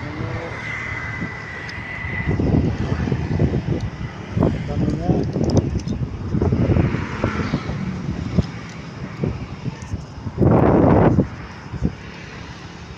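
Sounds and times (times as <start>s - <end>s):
rush of noise: 0.0s - 12.9s
traffic rumble: 0.0s - 12.9s
wind buffeting microphone: 0.0s - 12.9s.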